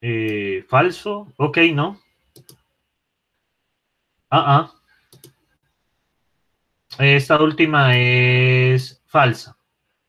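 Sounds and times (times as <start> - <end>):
computer mouse clicks: 2.3 - 2.7, 5.0 - 5.5.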